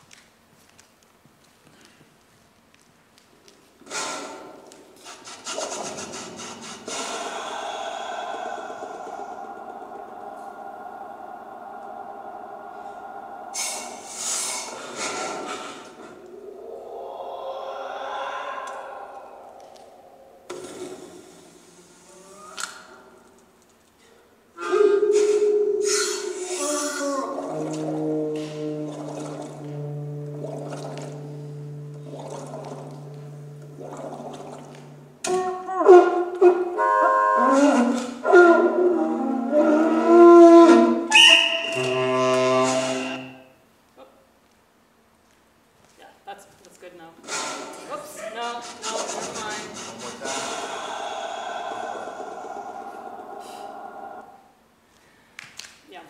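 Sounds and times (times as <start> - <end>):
low held drone: 5.5 - 23.3, 24.6 - 40.9, 49.0 - 54.6
experimental saxophone and effects: 18.4 - 21.2, 24.6 - 43.6.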